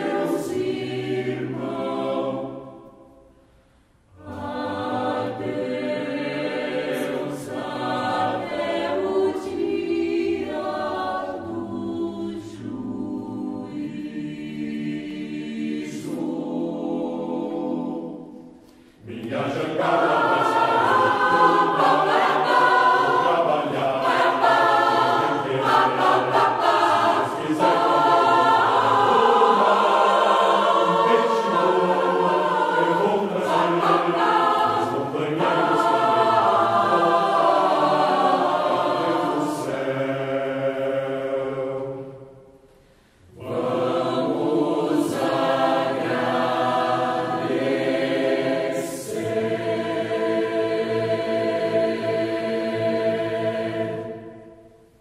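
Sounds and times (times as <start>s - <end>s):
mixed choir singing: 0.0s - 3.4s, 4.1s - 55.0s.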